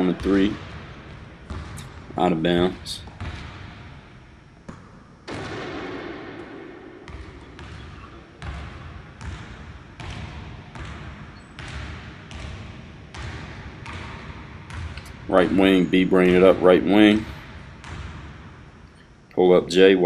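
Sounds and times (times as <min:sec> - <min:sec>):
basketball bouncing on hardwood: 0:00.2 - 0:01.9, 0:03.0 - 0:03.9, 0:04.6 - 0:16.4, 0:17.4 - 0:18.5.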